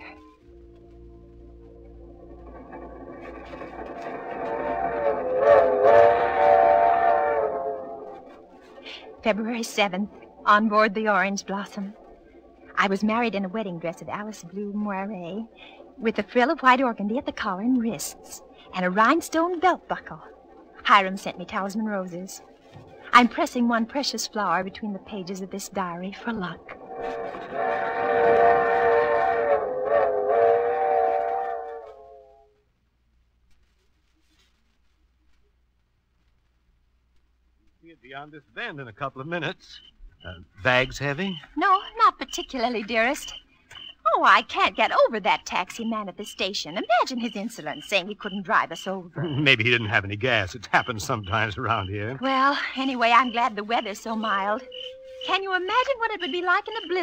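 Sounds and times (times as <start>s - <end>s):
steam locomotive whistle: 4.1s - 8.3s, 26.3s - 32.5s.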